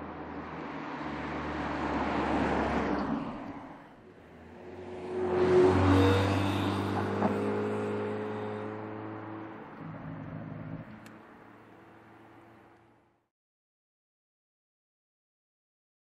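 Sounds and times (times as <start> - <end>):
car passing by: 0.0 - 13.1.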